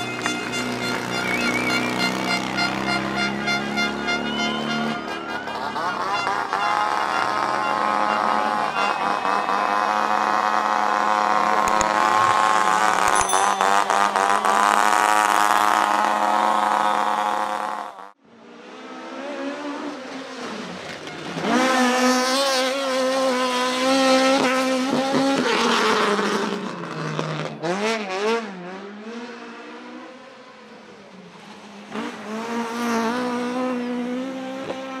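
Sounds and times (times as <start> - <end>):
rally car engines revving: 0.0 - 13.2, 14.2 - 35.0.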